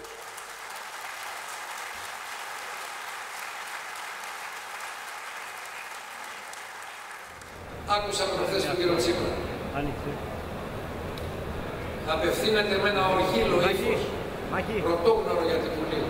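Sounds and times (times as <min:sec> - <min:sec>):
large audience applauding: 0:00.0 - 0:07.7.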